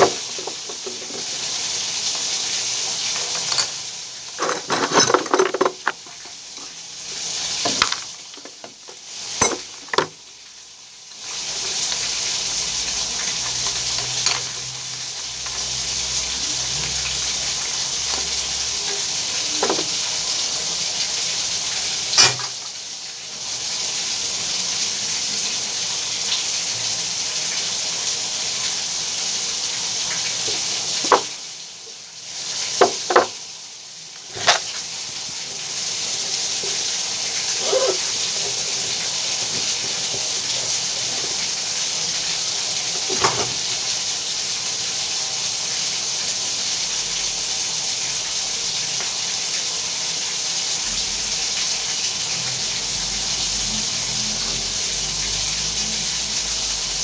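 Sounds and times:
water rushing from pipe valve: 0:00.0 - 0:57.0.

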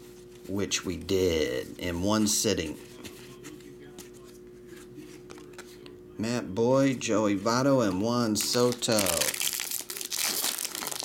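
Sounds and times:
foil wrapper crinkling and tearing: 0:08.3 - 0:11.0.

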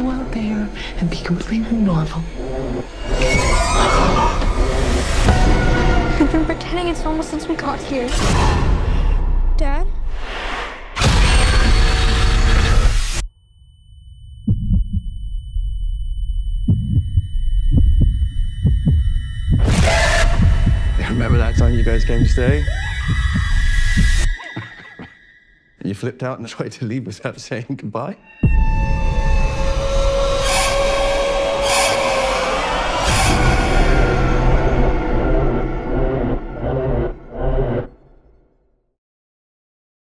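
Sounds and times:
dark low rumble: 0:00.0 - 0:10.1, 0:11.6 - 0:24.4, 0:28.5 - 0:38.4
eerie held tones: 0:13.1 - 0:25.8, 0:28.2 - 0:38.4
heartbeat-like double thuds: 0:14.5 - 0:15.4, 0:16.4 - 0:24.3.

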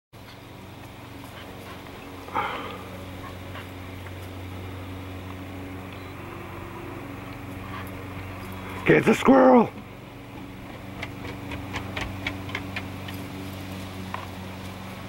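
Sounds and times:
steady low hum: 0:00.2 - 0:15.0.

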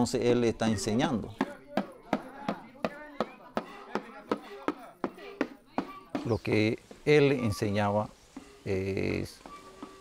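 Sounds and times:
percussion knocks beat: 0:01.3 - 0:07.1.

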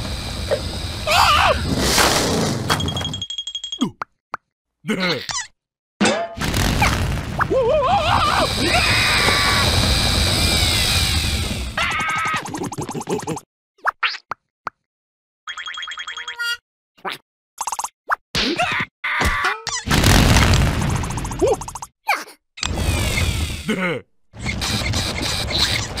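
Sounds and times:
rapid electronic chirps: 0:20.7 - 0:21.9.

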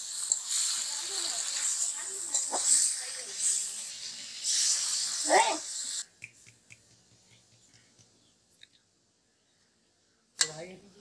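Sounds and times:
food sizzling in a wok: 0:00.0 - 0:06.1.

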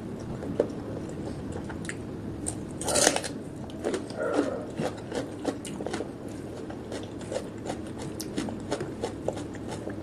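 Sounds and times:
chewing: 0:01.5 - 0:10.0
crisp crunch of onion bite: 0:02.4 - 0:10.0.

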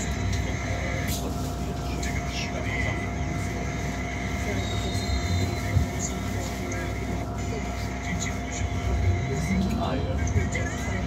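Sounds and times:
bus cabin low rumble: 0:00.0 - 0:11.0.

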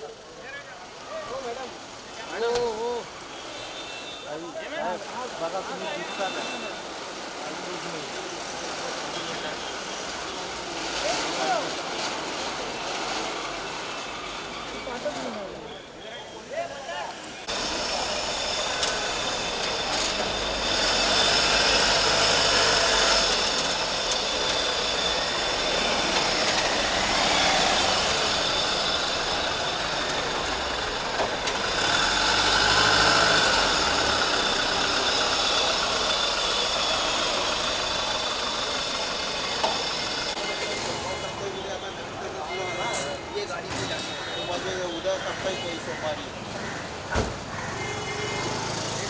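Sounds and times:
voices: 0:00.0 - 0:21.2, 0:32.5 - 0:49.0
street noise: 0:00.0 - 0:49.0
van engine running: 0:17.5 - 0:40.4.

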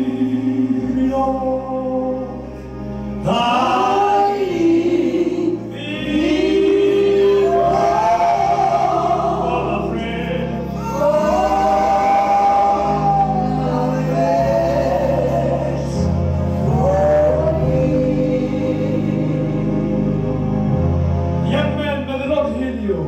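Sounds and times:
voices singing gospel song: 0:00.0 - 0:02.5, 0:03.1 - 0:20.9.

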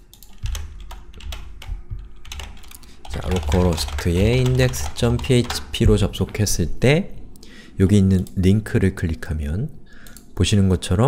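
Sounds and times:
keyboard and mouse clicking: 0:00.0 - 0:06.4, 0:10.0 - 0:10.3.

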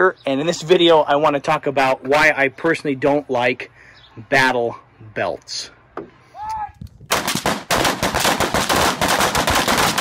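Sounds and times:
rifle gunfire: 0:07.1 - 0:10.0.

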